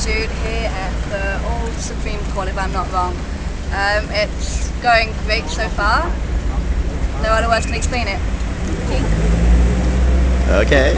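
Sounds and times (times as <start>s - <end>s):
low engine hum: 0.0s - 10.9s
road traffic rumble: 0.0s - 10.9s.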